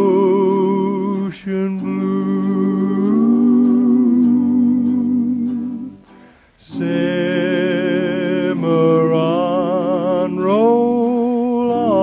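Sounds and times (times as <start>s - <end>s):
guitar accompaniment: 0.0s - 12.0s
person singing western song: 0.0s - 12.0s.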